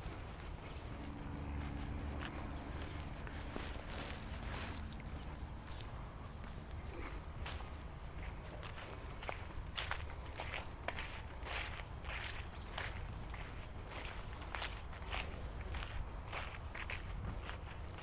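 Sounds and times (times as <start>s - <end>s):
footsteps on dry leaves: 0.0s - 18.0s.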